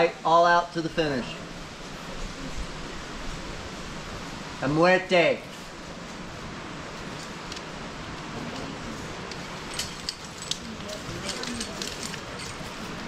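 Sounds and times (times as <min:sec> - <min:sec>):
outdoor background hiss: 0:00.0 - 0:13.0
light clicks and rustles: 0:07.0 - 0:13.0.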